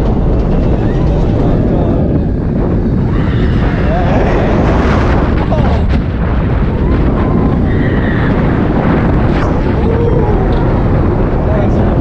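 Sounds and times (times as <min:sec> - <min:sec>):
wind roaring over microphone: 0:00.0 - 0:12.0.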